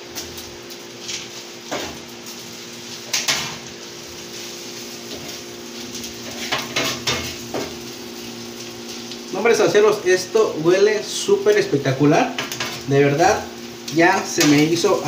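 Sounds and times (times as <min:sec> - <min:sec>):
knife tapping and scraping on griddle: 0:03.1 - 0:03.6, 0:06.2 - 0:07.8, 0:14.4 - 0:14.7.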